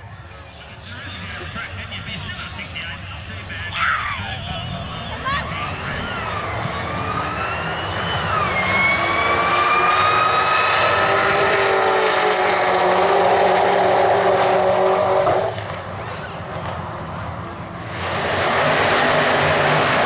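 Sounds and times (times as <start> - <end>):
racing car engines at full throttle: 0.0 - 20.0.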